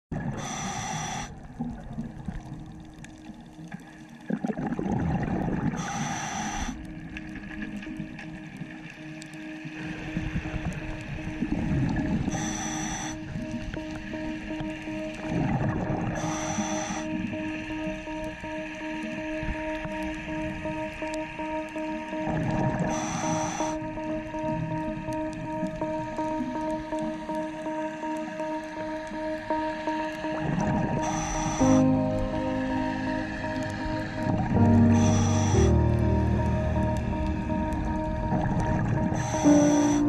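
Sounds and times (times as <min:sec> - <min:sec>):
regulator inhale hiss: 0:00.4 - 0:01.4, 0:05.8 - 0:07.1, 0:12.2 - 0:14.1, 0:16.2 - 0:17.6, 0:22.8 - 0:24.0, 0:31.0 - 0:37.4, 0:39.0 - 0:40.0
exhaled bubbles rumbling: 0:01.3 - 0:05.9, 0:10.1 - 0:12.3, 0:13.3 - 0:16.2, 0:22.2 - 0:23.0, 0:30.2 - 0:31.0, 0:31.6 - 0:40.0
held music tones: 0:21.2 - 0:40.0.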